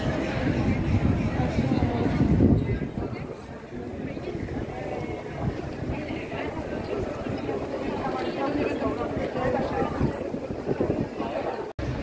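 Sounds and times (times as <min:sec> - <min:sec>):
indistinct chatter of passers-by: 0:00.0 - 0:12.0.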